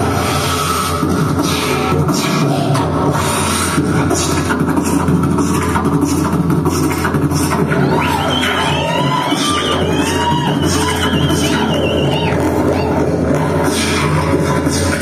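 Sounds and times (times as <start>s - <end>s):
low bass drone: 0.0s - 15.0s.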